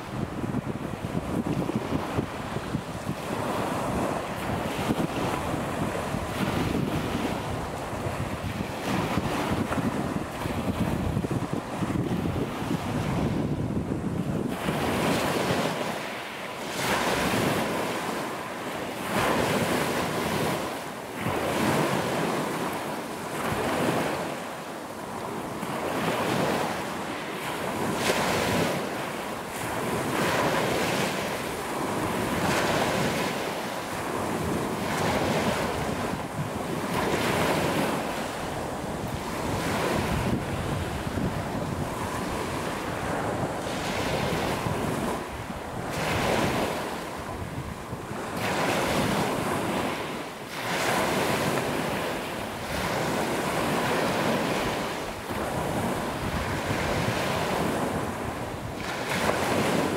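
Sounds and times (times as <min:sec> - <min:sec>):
waves washing over pebble beach: 0:00.0 - 0:59.9.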